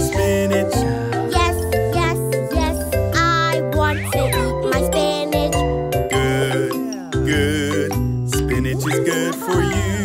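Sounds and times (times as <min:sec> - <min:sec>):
bouncy backing track with bass: 0:00.0 - 0:10.0
person singing children's song: 0:00.0 - 0:10.0.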